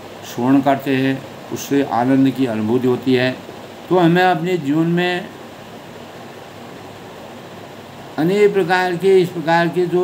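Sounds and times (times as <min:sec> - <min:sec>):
ceiling fan hiss: 0:00.0 - 0:10.0.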